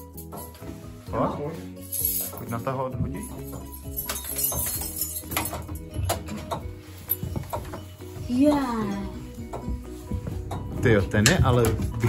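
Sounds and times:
metallic clicks and clinks: 3.4s - 7.9s.

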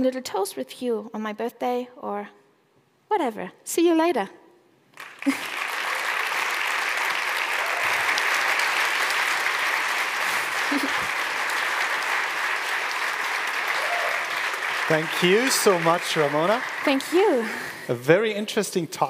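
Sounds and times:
audience applauding: 4.9s - 18.4s.

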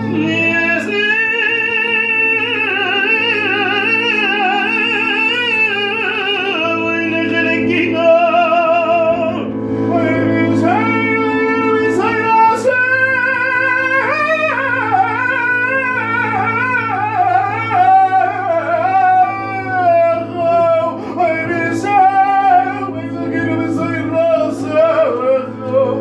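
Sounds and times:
man singing in high voice: 0.0s - 26.0s
sustained keyboard chord: 0.0s - 26.0s.

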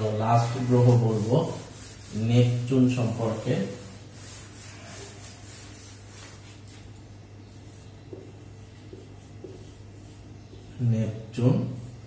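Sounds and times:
marker writing on whiteboard: 0.0s - 12.0s
steady low hum: 0.0s - 12.0s.

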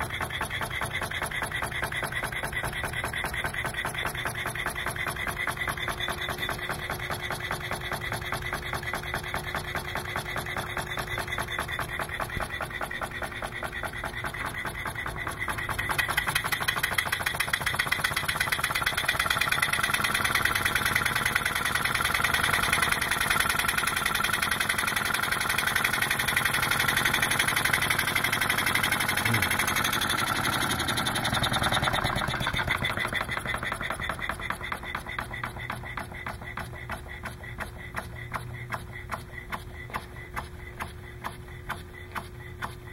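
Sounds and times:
pneumatic piston engine running: 0.0s - 42.9s.

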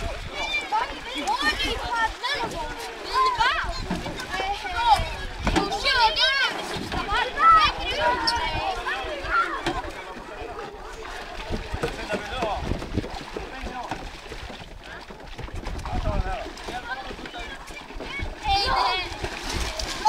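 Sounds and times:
water splashing: 0.0s - 20.0s
children shouting: 0.3s - 10.0s, 17.3s - 20.0s.

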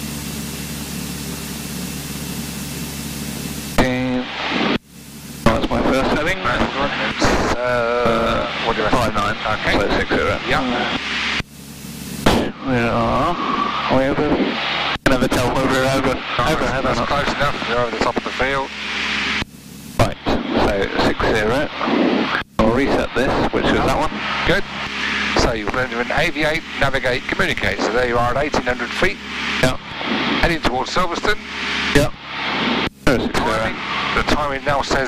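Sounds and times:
aircraft engine droning: 0.0s - 35.0s
radio hiss bursts: 0.1s - 35.0s
voices over aircraft radio: 5.4s - 11.4s, 12.3s - 35.0s.

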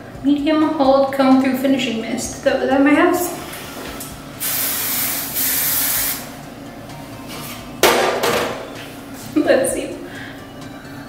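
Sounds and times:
aerosol can spraying: 4.4s - 6.3s.

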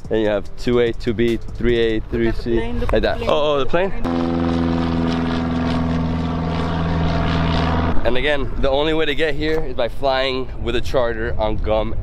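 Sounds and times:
propeller plane flying overhead: 3.6s - 9.2s.

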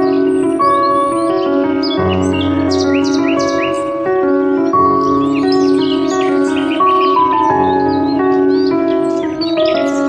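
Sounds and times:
birds chirping: 0.0s - 10.0s
calm background music: 0.0s - 10.0s.

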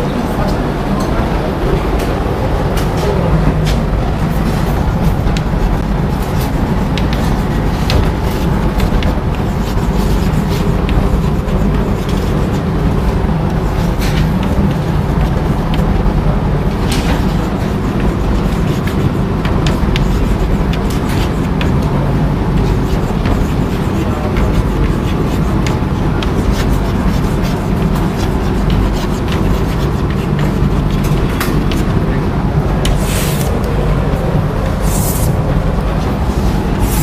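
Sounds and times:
steady low rumble: 0.0s - 37.0s
chalk writing on a chalkboard: 2.7s - 37.0s
loud low rumble: 30.0s - 37.0s.

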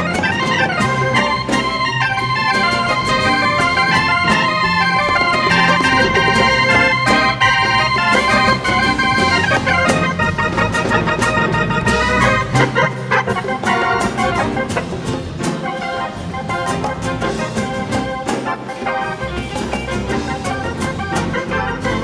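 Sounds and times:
hand drum strokes: 0.0s - 22.0s
live band music: 0.0s - 22.0s
organ keyboard solo: 0.0s - 22.0s.

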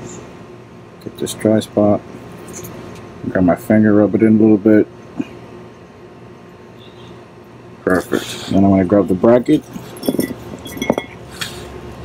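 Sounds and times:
metal parts clinking: 2.4s - 2.8s, 9.5s - 11.2s
short metallic ring: 9.8s - 11.2s.

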